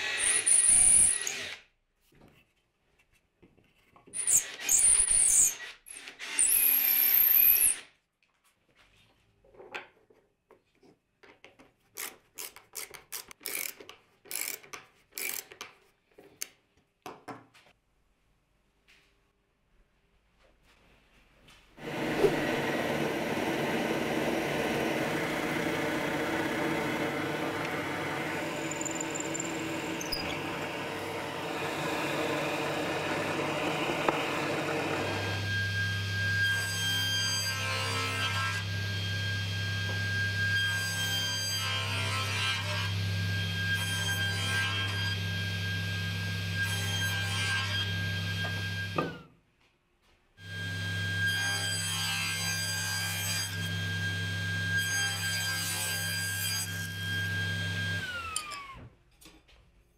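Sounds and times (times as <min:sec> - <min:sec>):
saw cutting wood: 0:04.2 - 0:07.9, 0:21.8 - 0:49.2, 0:50.4 - 0:58.4
table saw motor hum: 0:21.8 - 0:36.5
steady machine noise: 0:21.9 - 0:33.2.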